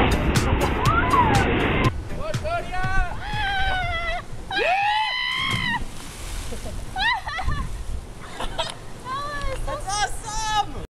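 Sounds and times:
young people whooping and yelling: 0:00.8 - 0:01.5, 0:03.0 - 0:05.9, 0:06.9 - 0:07.8
water splashing: 0:03.5 - 0:09.8.

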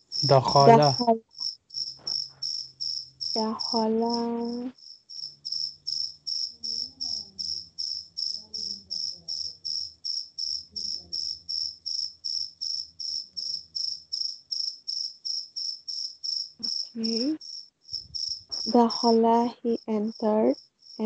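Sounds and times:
cricket chirping: 0:00.0 - 0:21.0
faint voice murmuring: 0:00.2 - 0:01.2.

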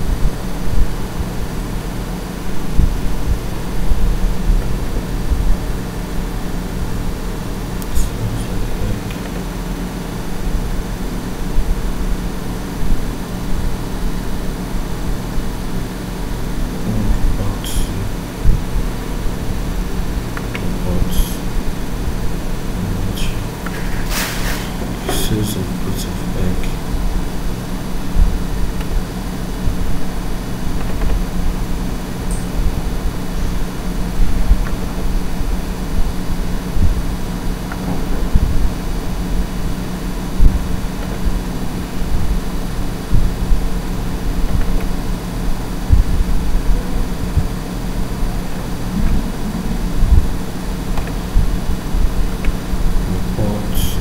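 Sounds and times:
low machine hum: 0:00.0 - 0:54.0
uneven rumble: 0:00.0 - 0:54.0.

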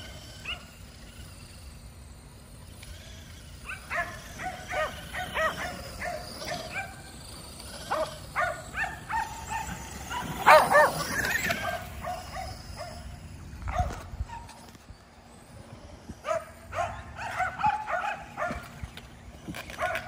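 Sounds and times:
dogs barking: 0:00.4 - 0:00.8, 0:03.6 - 0:07.1, 0:07.8 - 0:14.6, 0:16.2 - 0:18.8, 0:19.8 - 0:20.0.

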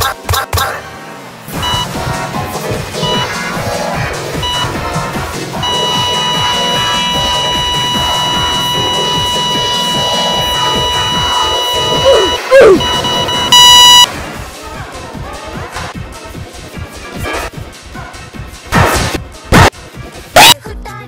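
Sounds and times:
heart monitor beep: 0:01.6 - 0:01.9, 0:03.0 - 0:03.4, 0:04.4 - 0:04.9, 0:05.6 - 0:14.1
electronic pop song: 0:01.6 - 0:14.1
flatline tone: 0:04.4 - 0:04.9, 0:05.6 - 0:14.1.

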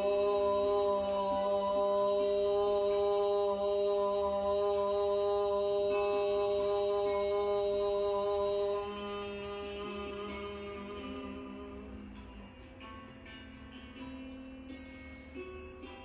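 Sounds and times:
woman chanting on a held note: 0:00.0 - 0:11.8
soft background music: 0:00.0 - 0:16.0.

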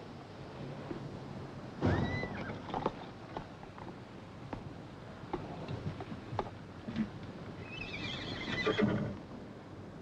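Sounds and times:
horse whinnying: 0:07.7 - 0:09.2.

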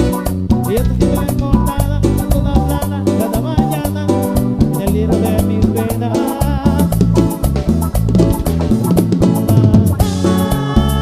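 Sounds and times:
tropical dance band playing: 0:00.0 - 0:11.0.

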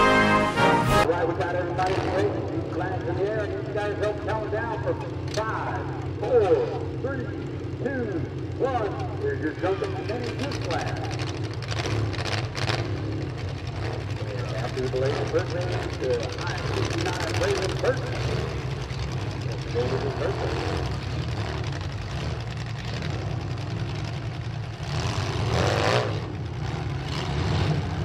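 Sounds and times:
car engines idling: 0:00.0 - 0:28.0.

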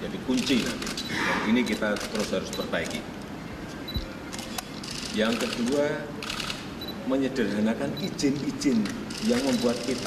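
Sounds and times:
camera shutters clicking: 0:00.3 - 0:01.1, 0:01.7 - 0:03.0, 0:04.3 - 0:06.7.

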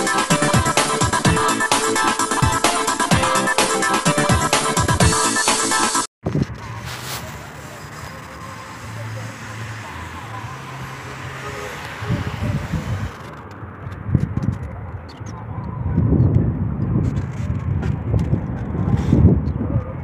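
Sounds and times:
background music: 0:00.0 - 0:06.1
wind rumbling on microphone: 0:06.2 - 0:08.6, 0:11.8 - 0:20.0
street traffic: 0:06.2 - 0:20.0.

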